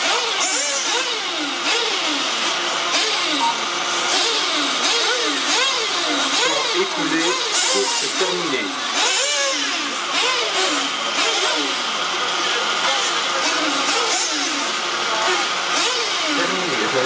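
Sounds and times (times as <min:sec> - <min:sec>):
rc car motors whirring: 0:00.0 - 0:17.0
race commentator talking: 0:06.3 - 0:08.8, 0:16.3 - 0:17.0.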